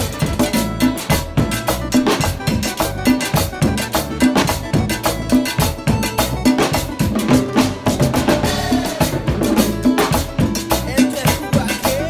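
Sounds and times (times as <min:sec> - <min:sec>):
salsa percussion groove: 0:00.0 - 0:12.0.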